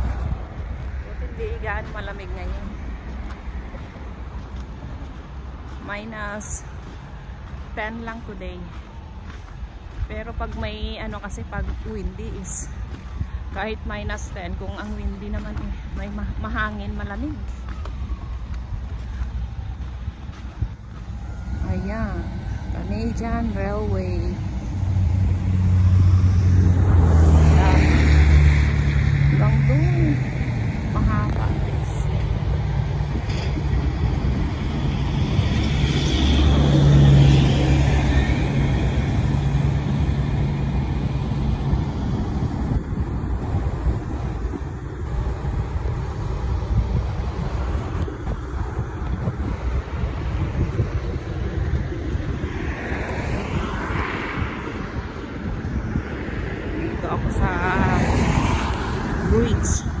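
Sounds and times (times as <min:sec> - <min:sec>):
road traffic: 0:00.0 - 1:00.0
vehicle engine hum passing: 0:00.0 - 1:00.0
wind rumbling on microphone: 0:00.0 - 1:00.0.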